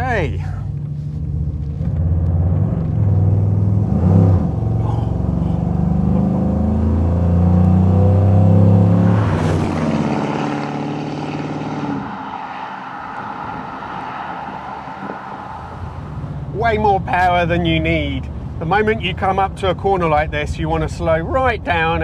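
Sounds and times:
car engine accelerating hard: 0:00.6 - 0:18.1.

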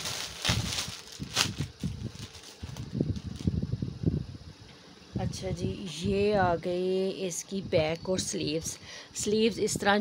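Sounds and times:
cloth and plastic wrap rustling: 0:00.0 - 0:03.6.

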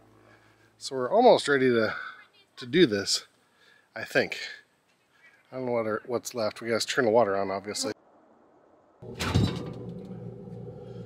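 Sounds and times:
sudden thump: 0:09.0 - 0:10.2
steady low hum: 0:09.0 - 0:11.0.

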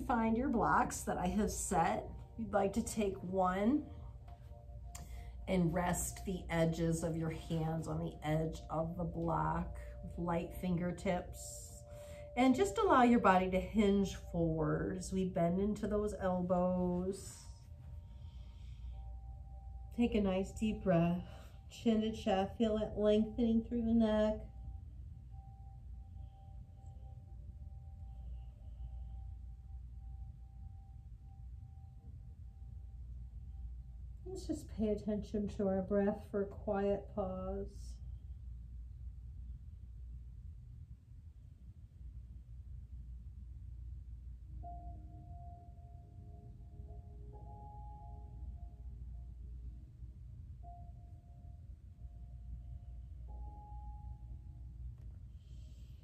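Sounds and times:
faint steady tone: 0:00.0 - 0:56.0
low room rumble: 0:00.0 - 0:56.0
soft sustained background music: 0:00.0 - 0:56.0.

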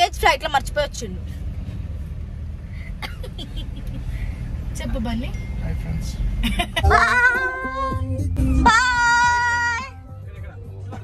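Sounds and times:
vehicle engine low rumble: 0:00.0 - 0:11.0.

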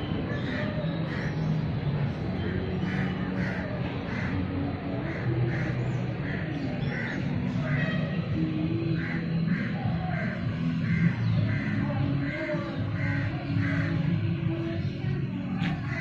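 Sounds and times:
crows cawing: 0:00.3 - 0:01.5, 0:02.4 - 0:04.4, 0:05.1 - 0:07.8, 0:09.0 - 0:14.1, 0:15.6 - 0:16.0.

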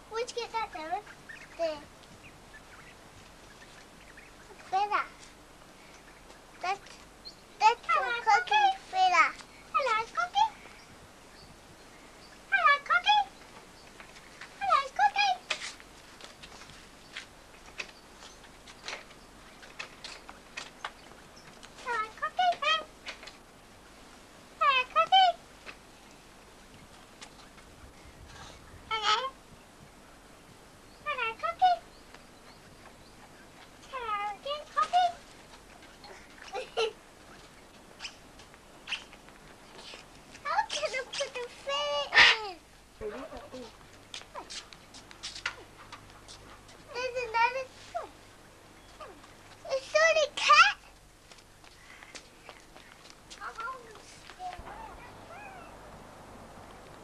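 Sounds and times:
cockatoo calling: 0:38.0 - 0:42.6, 0:53.4 - 0:56.0.

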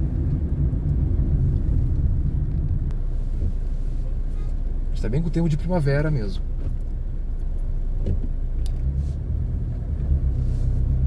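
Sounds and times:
car engine: 0:00.0 - 0:11.0.

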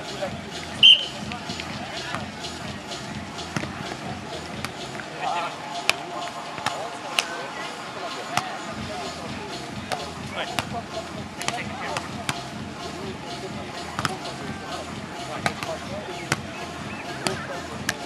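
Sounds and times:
voices of players and onlookers: 0:00.0 - 0:18.0
volleyball hand smacks: 0:14.0 - 0:14.2.

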